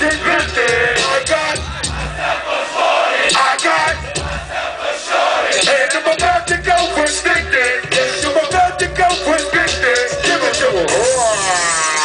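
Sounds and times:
crowd shouting: 0.0 - 6.0, 8.0 - 12.0
hip hop beat over pa: 0.0 - 12.0.

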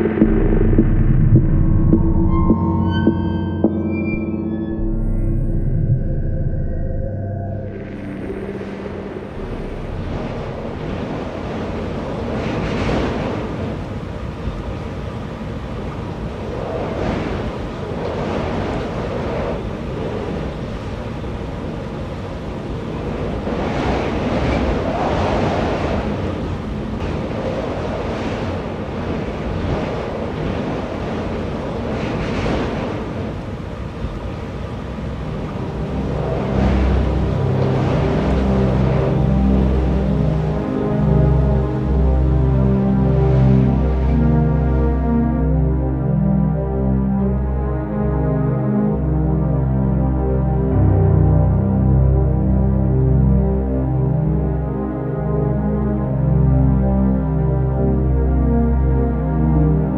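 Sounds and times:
low music tones: 0.0 - 12.8, 33.7 - 59.9
wind rumble on microphone: 0.0 - 59.9
wind blowing in gusts: 7.6 - 45.0.

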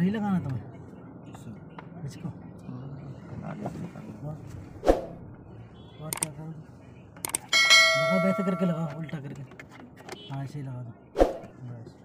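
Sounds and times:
bell ding: 7.5 - 9.0.

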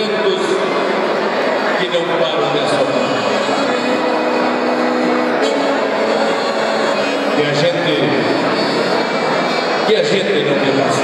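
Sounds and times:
accordion: 0.0 - 11.0.

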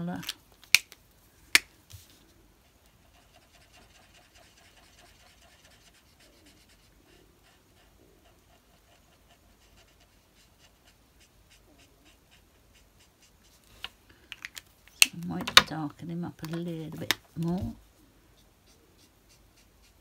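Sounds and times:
marker tip scratching on card: 3.1 - 13.6, 18.6 - 20.0.

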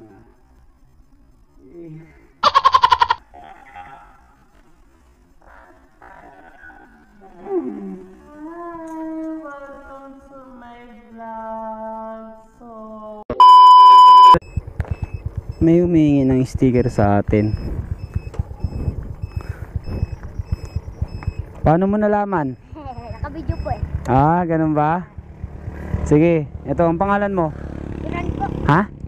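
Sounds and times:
small motorcycle engine idling: 14.4 - 28.9.

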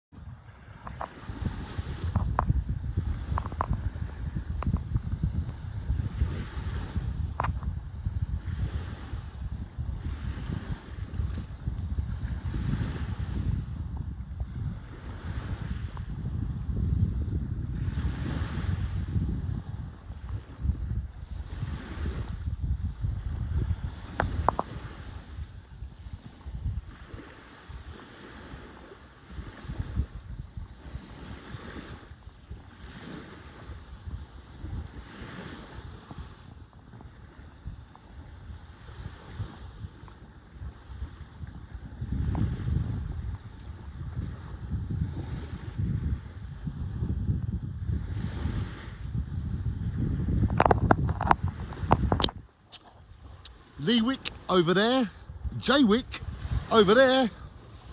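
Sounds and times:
sea waves: 0.1 - 57.9
wind buffeting microphone: 0.1 - 57.9.

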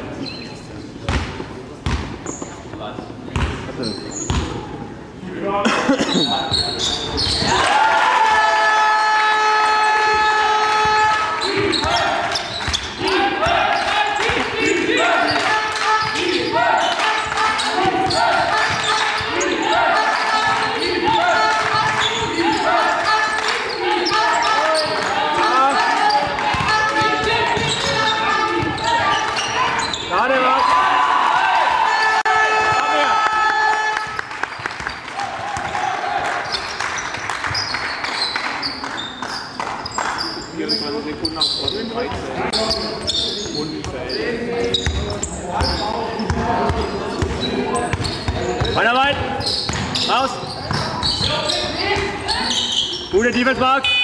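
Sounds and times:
basketball bouncing on court: 1.1 - 4.6, 10.8 - 14.4, 26.1 - 30.0, 34.5 - 35.8, 44.7 - 48.8, 49.4 - 52.2
spectators' voices calling: 6.0 - 54.0.

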